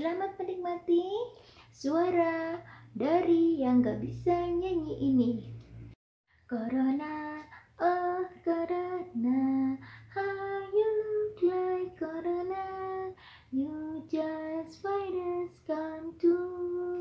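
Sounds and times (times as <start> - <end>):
woman singing unaccompanied: 0.0 - 5.6, 6.5 - 17.0.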